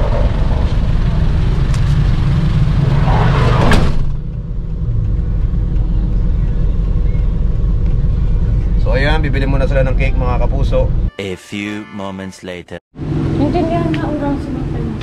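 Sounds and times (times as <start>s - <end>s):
street noise: 0.0s - 15.0s
van engine idling: 4.0s - 10.8s.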